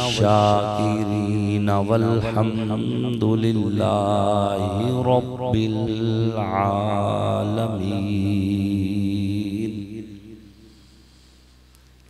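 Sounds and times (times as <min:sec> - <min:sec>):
man chanting into microphone: 0:00.0 - 0:10.6.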